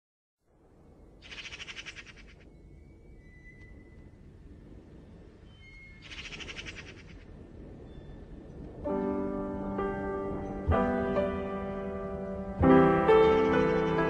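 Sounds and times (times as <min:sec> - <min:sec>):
bird trills: 0:05.4 - 0:08.3.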